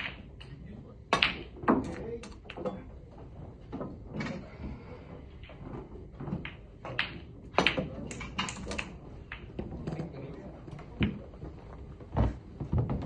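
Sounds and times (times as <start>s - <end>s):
snooker balls knocking: 0.0s - 4.5s, 5.2s - 13.0s.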